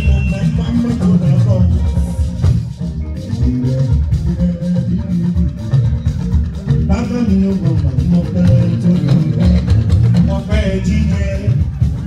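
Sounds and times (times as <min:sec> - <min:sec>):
band music with heavy bass: 0:00.0 - 0:12.0.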